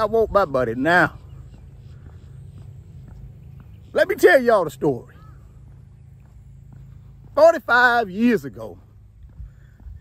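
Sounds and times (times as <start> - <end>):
man speaking: 0.0 - 1.4, 3.9 - 5.2, 7.3 - 8.9
wind rumble on microphone: 8.5 - 10.0.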